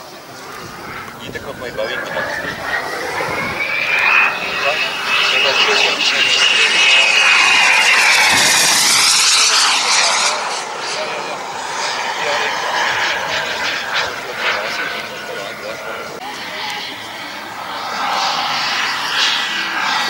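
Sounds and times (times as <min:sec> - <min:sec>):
model jet turbine whine: 0:00.0 - 0:20.0.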